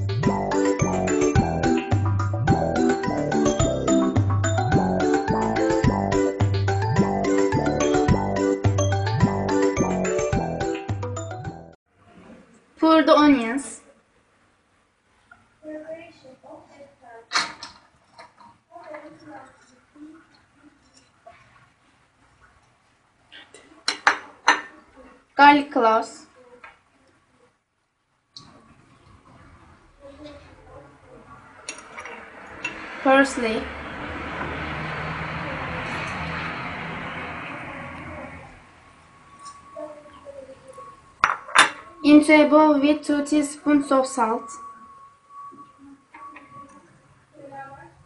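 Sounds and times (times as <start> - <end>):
dishes clinking: 23.8 - 24.8, 31.7 - 32.8, 41.2 - 42.0.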